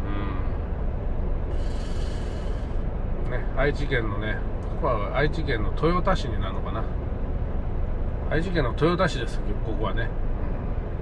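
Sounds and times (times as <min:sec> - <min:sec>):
man humming: 0:00.0 - 0:00.6
truck engine idling: 0:00.4 - 0:11.0.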